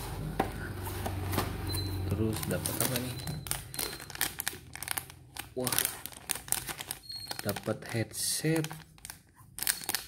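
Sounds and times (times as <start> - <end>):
plastic bag crinkling: 2.1 - 10.0.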